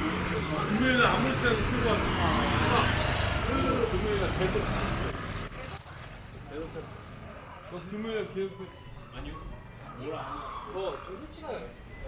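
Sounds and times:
motor scooter passing: 0.0 - 8.0
street ambience: 0.0 - 12.0.

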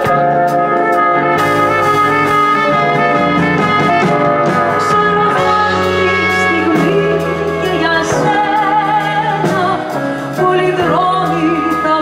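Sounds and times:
electric guitar: 0.0 - 12.0
keyboard: 0.0 - 12.0
low bass notes: 0.0 - 12.0
trumpet melody: 0.0 - 12.0.

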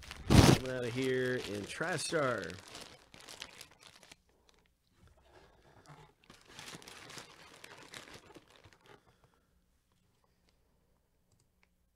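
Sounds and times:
cardboard crinkling and knocking: 0.0 - 4.1, 6.3 - 9.0.

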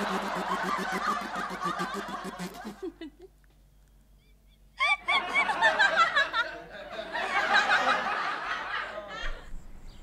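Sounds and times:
woman imitating tractor engine: 0.0 - 2.9.

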